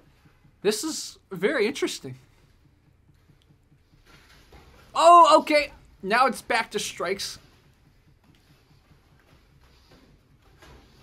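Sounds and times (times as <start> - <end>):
man exclaiming: 5.0 - 6.4.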